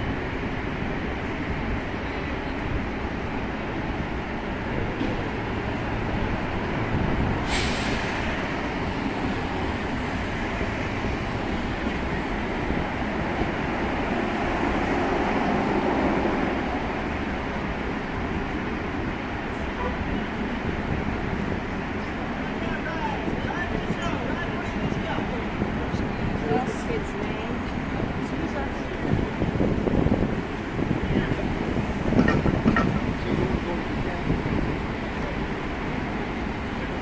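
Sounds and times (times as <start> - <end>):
low rumble of traffic: 0.0 - 37.0
brief sharp hiss: 7.4 - 8.3.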